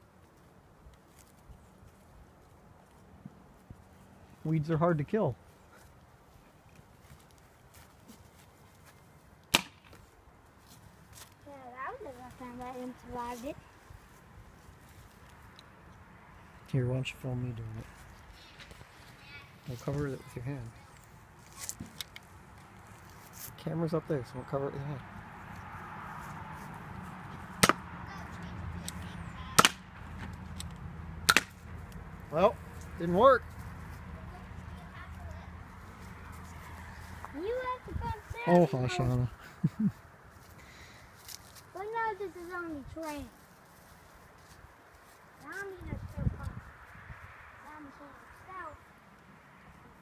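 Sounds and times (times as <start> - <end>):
faint steady background noise: 0.0 - 50.0
outdoor background hum: 5.3 - 46.8
sharp snap: 9.5 - 10.0, 27.6 - 27.8, 29.6 - 29.9, 31.3 - 31.6.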